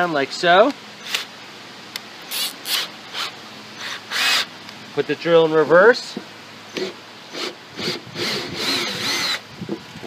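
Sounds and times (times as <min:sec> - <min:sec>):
cordless drill whining: 0:02.4 - 0:04.5, 0:06.7 - 0:09.4.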